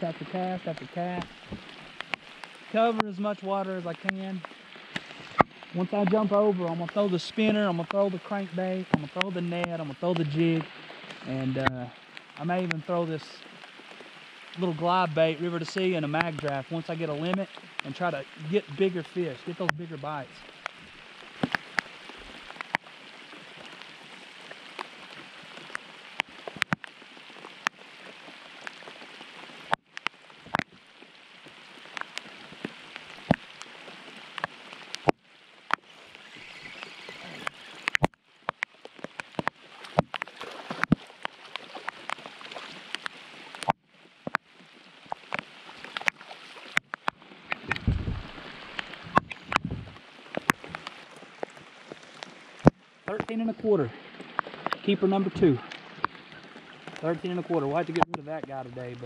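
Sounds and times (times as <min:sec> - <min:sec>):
rain falling on water: 0:00.0 - 0:59.0
low thumps: 0:47.6 - 0:50.0.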